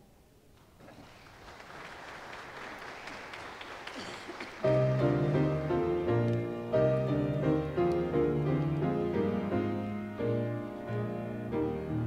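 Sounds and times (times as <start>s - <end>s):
congregation applauding: 0.8s - 6.8s
keyboard playing sustained chords: 4.7s - 12.0s.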